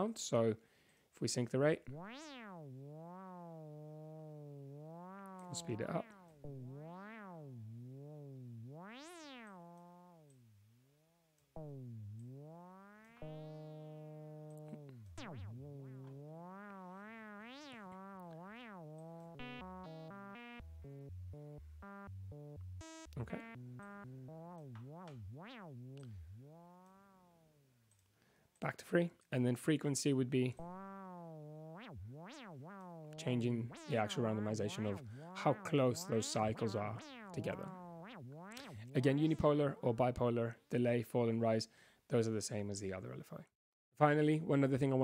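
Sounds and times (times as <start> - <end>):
synthesizer note sweeping pitch: 1.9 - 27.6, 30.6 - 40.2.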